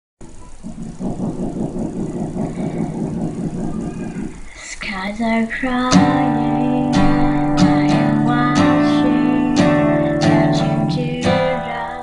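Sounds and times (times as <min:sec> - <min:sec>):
steel-string acoustic guitar: 0:05.9 - 0:12.0.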